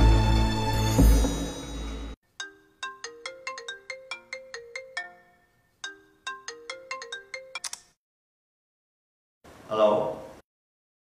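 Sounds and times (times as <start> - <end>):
mobile phone ringtone: 2.4 - 7.8.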